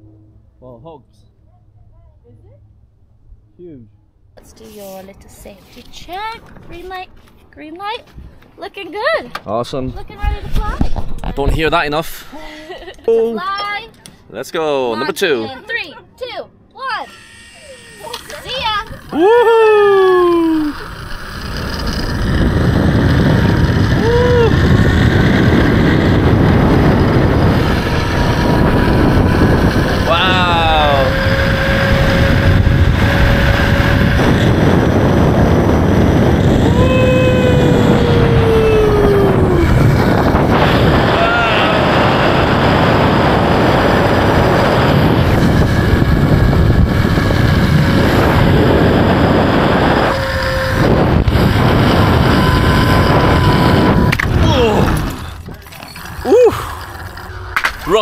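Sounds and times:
wind rushing on microphone: 0:09.7 - 0:12.9, 0:18.0 - 0:58.0
trolley running along cable: 0:17.0 - 0:58.0
person whooping: 0:19.1 - 0:20.9, 0:23.8 - 0:24.8, 0:36.6 - 0:39.9, 0:40.8 - 0:42.6, 0:53.8 - 0:55.1, 0:56.2 - 0:56.8.

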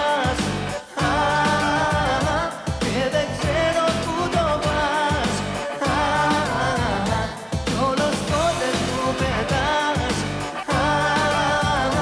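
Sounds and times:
pop song with male vocal: 0:00.0 - 0:12.0.

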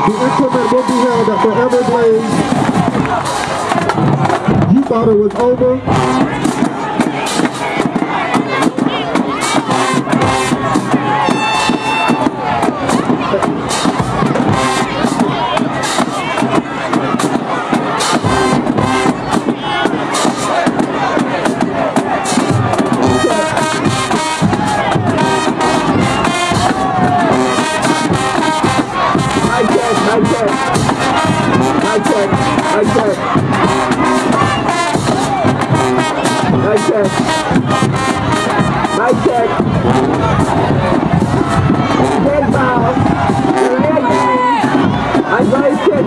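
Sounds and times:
crowd cheering and shouting: 0:00.0 - 0:46.0
marching band brass and drums: 0:00.0 - 0:46.0.

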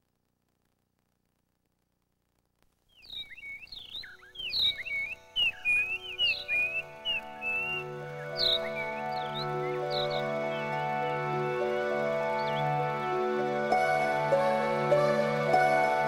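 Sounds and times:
rapid bird chirps: 0:02.8 - 0:11.3
soft sustained music notes: 0:03.4 - 0:16.0.

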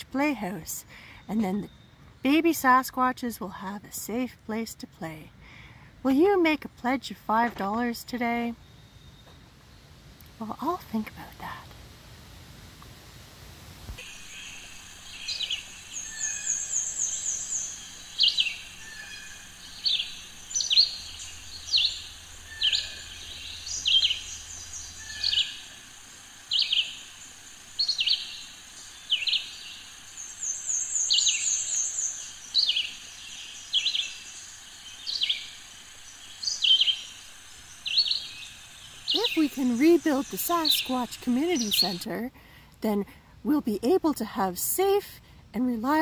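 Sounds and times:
bird downward-slurred call: 0:14.0 - 0:25.8
high rapid bird trill: 0:14.0 - 0:42.2.

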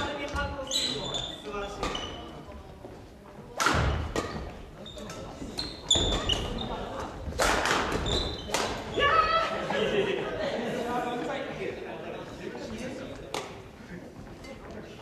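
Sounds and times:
shoes squeaking on wooden floor: 0:00.0 - 0:09.2.

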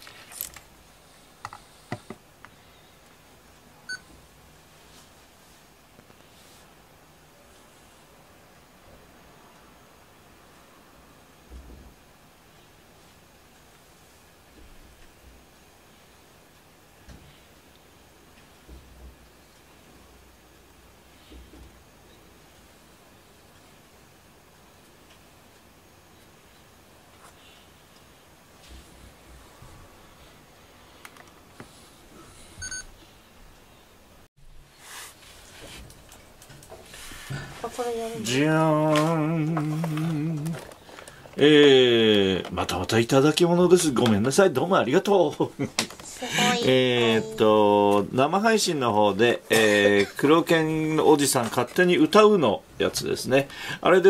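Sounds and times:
camcorder beep: 0:32.6 - 0:32.9.

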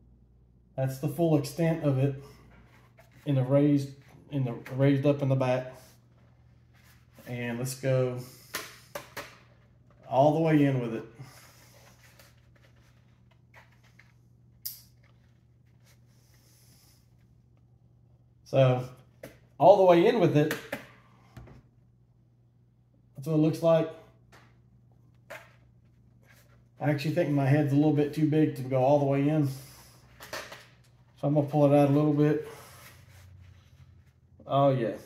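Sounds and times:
low room hum: 0:00.0 - 0:35.0.

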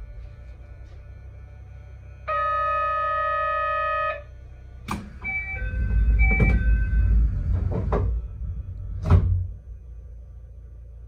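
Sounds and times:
low rumble of closing doors: 0:00.0 - 0:11.0
electronic buzzer tone: 0:01.5 - 0:07.3
door chime high and low notes: 0:05.2 - 0:08.8.

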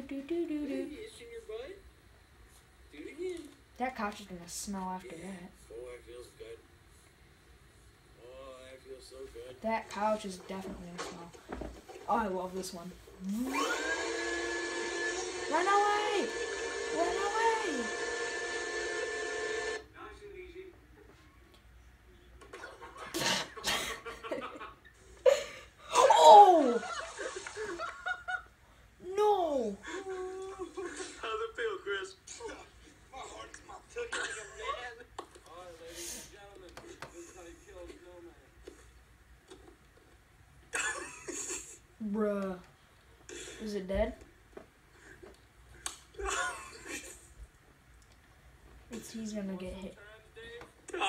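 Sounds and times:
vacuum cleaner hum and hiss: 0:10.6 - 0:19.8.

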